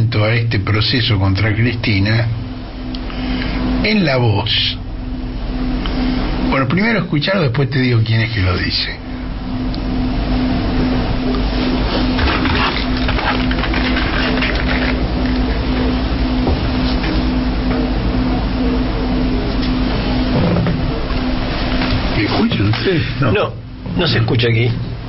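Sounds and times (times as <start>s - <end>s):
loud rumble and hiss: 0.0s - 25.0s
low humming tone breaking up: 0.0s - 25.0s.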